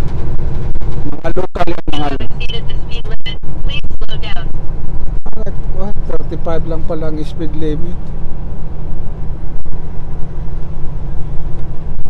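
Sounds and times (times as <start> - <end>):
road noise inside cab: 0.0 - 12.0
truck engine rumble: 0.0 - 12.0
voice: 1.0 - 4.5, 5.3 - 8.0.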